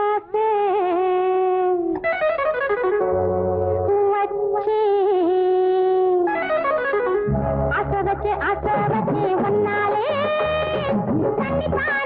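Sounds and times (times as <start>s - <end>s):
film love song music: 0.4s - 12.0s.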